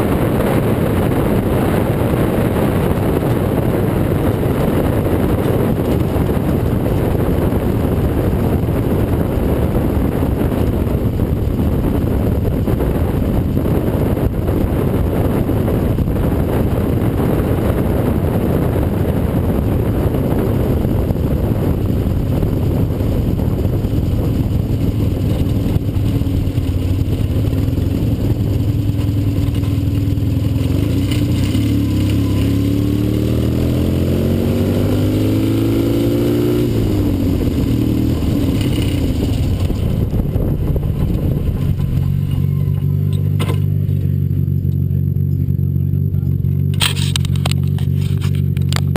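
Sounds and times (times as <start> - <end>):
race car engine revving: 0.0 - 48.9.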